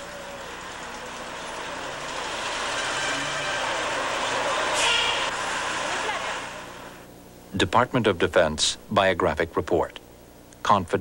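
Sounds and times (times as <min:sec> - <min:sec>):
city traffic engines: 0:00.0 - 0:07.0.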